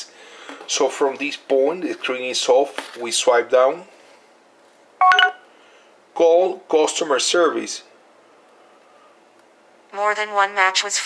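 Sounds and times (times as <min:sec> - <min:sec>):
short electronic phone beep: 0:05.0 - 0:05.4.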